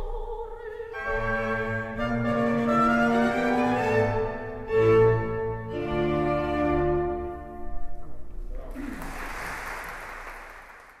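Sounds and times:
orchestral chords: 0:00.9 - 0:08.3
audience applause: 0:08.7 - 0:11.0.

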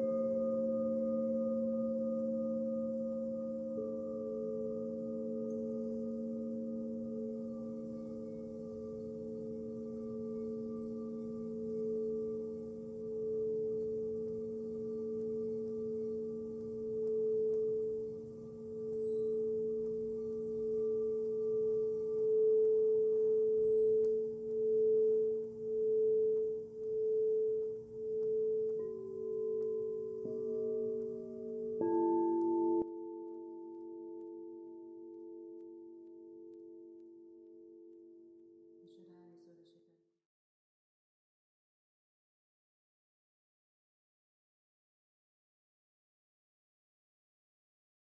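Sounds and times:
singing bowls ringing: 0:00.0 - 0:38.8.

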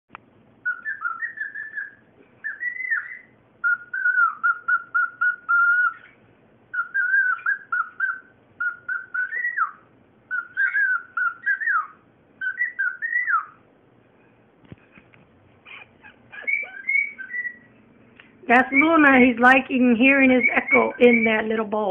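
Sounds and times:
cockatiel whistling: 0:00.6 - 0:13.6, 0:15.7 - 0:17.8, 0:18.5 - 0:19.2, 0:20.2 - 0:21.5.

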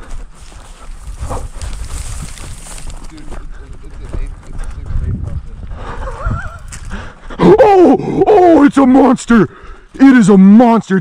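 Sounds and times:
footfalls through dry grass: 0:00.0 - 0:04.2
man yelling excitedly: 0:07.4 - 0:11.0.

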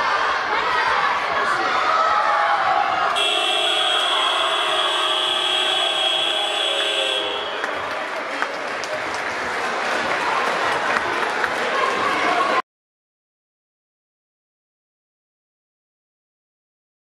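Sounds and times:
crowd noise: 0:00.0 - 0:12.6
people shouting: 0:00.5 - 0:07.6.

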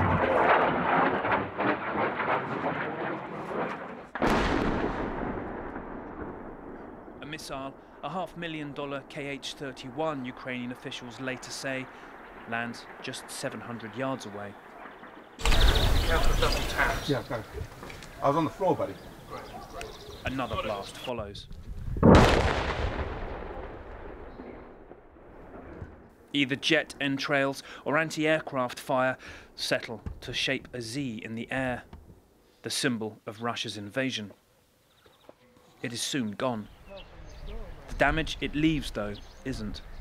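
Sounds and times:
missile explosion blast: 0:00.0 - 0:10.7, 0:14.5 - 0:17.6, 0:21.9 - 0:26.1.

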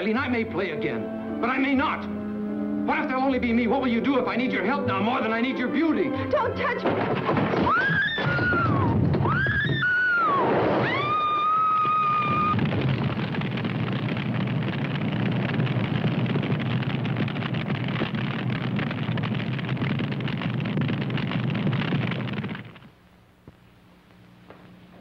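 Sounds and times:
large fire burning: 0:07.1 - 0:23.8
woman screaming: 0:07.6 - 0:12.5.

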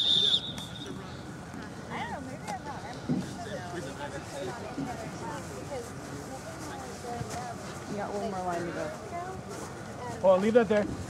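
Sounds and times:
referee whistle blowing: 0:00.0 - 0:01.0.

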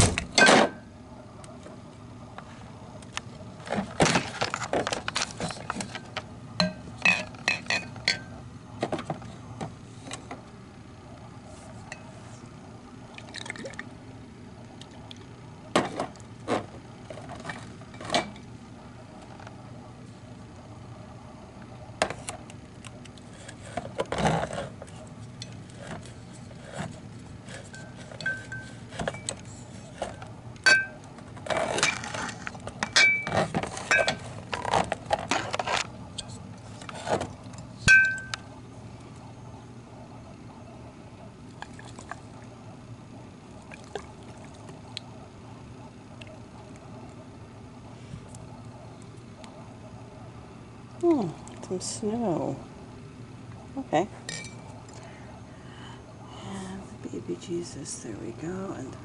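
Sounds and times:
low hum: 0:00.0 - 0:59.0.

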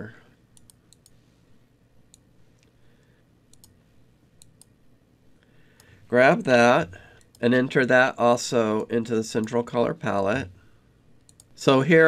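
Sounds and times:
faint computer clicks: 0:00.6 - 0:01.2, 0:03.5 - 0:03.8, 0:11.2 - 0:11.6.

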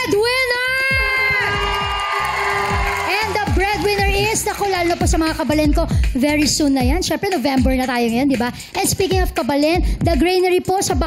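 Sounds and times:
woman shouting into a microphone: 0:00.0 - 0:05.8
studio audience cheering: 0:00.7 - 0:05.6
show music with steady beat: 0:00.9 - 0:11.0.

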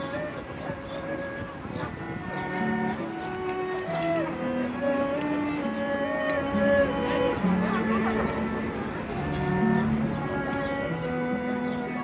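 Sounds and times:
bowed fiddle slow melody: 0:00.0 - 0:12.0.

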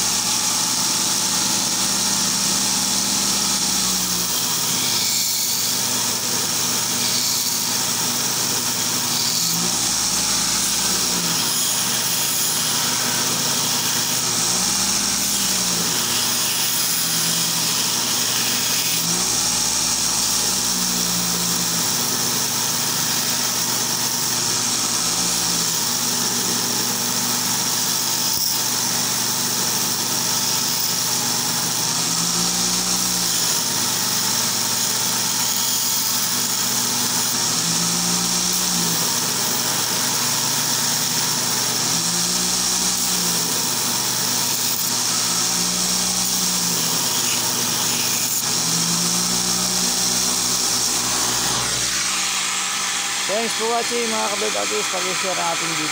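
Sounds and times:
belt grinder grinding steel: 0:00.0 - 0:55.9.

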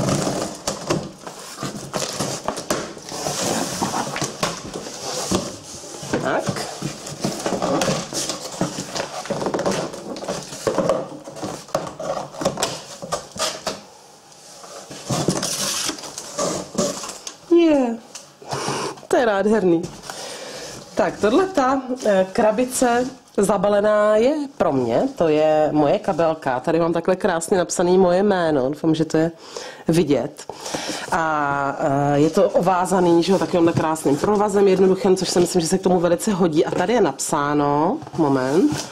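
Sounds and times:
cardboard rustling and scraping: 0:00.0 - 0:17.4, 0:32.0 - 0:38.9.

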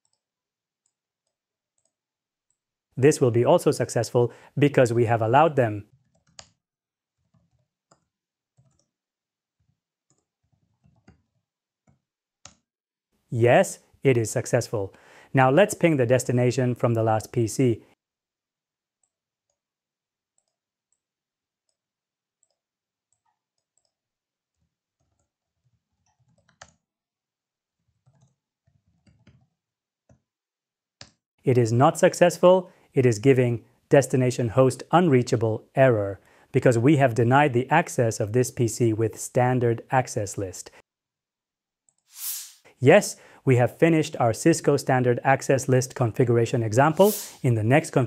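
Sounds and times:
computer mouse clicks: 0:00.0 - 0:00.2, 0:06.0 - 0:06.6, 0:07.2 - 0:08.9, 0:22.4 - 0:26.8, 0:27.9 - 0:29.5.

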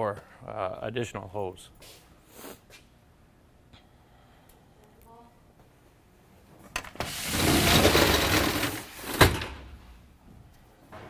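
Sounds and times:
roll-up door slats rattling: 0:07.0 - 0:09.6.

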